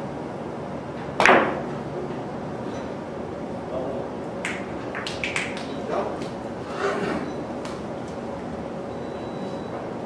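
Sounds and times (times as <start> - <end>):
billiard balls cracking: 1.2 - 1.7, 4.4 - 5.7.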